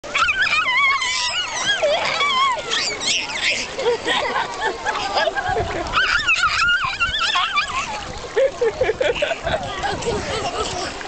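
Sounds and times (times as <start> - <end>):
water splashing: 0.0 - 11.0
baby squealing: 6.0 - 7.9.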